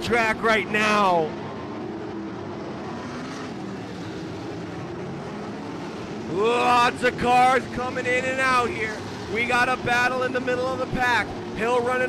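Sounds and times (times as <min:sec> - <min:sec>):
racing engines droning: 0:00.0 - 0:12.0.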